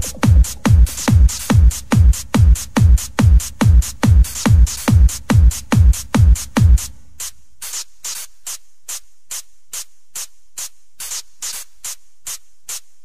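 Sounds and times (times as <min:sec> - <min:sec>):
hissing hi-hat hits: 0:00.0 - 0:13.0.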